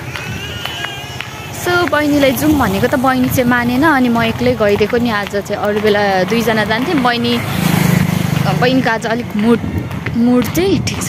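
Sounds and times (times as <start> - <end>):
passing vehicle engine pulsing: 0.0 - 11.0
woman talking: 1.6 - 7.5, 8.4 - 11.0.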